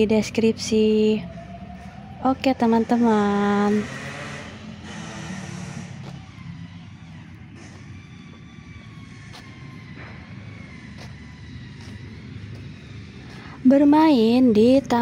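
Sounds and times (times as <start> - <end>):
distant engines rumbling: 0.0 - 15.0.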